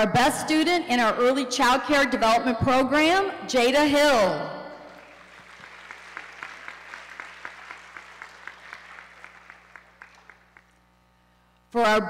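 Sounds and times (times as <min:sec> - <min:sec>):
audience applauding: 0:04.9 - 0:10.8.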